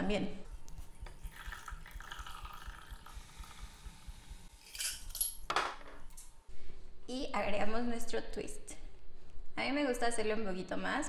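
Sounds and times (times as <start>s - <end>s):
liquid pouring into glass: 0.6s - 4.2s.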